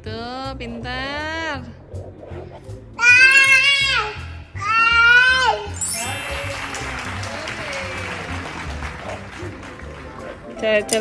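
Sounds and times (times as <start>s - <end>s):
background music with low beat: 0.0s - 11.0s
crowd applause: 5.9s - 10.6s.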